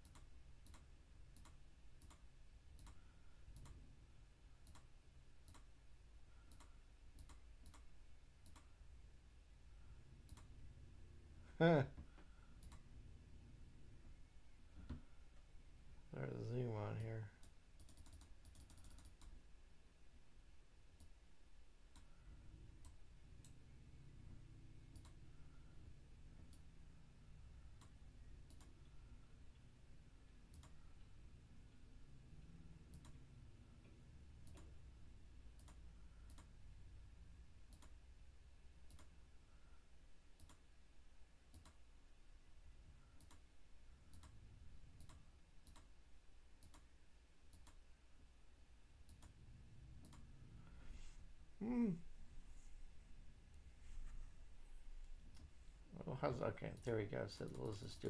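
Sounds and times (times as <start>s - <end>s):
computer mouse clicks: 0.0s - 3.8s, 4.6s - 5.7s, 6.4s - 8.8s, 10.2s - 10.6s, 12.5s - 12.9s, 17.4s - 19.4s, 21.9s - 23.6s, 24.9s - 25.2s, 26.4s - 26.7s, 27.8s - 28.9s, 30.5s - 31.1s, 32.8s - 33.2s, 34.4s - 34.8s, 35.5s - 36.6s, 37.7s - 38.0s, 38.8s - 39.2s, 40.4s - 40.7s, 41.5s - 41.8s, 43.0s - 45.9s, 46.6s - 46.9s, 47.5s - 47.8s, 49.0s - 50.3s, 56.7s - 58.0s
low background hum: 0.0s - 58.0s.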